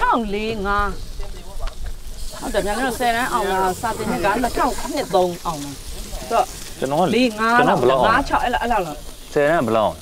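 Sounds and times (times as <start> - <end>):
food sizzling on grill: 0.0 - 10.0
woman and men talking: 0.0 - 10.0.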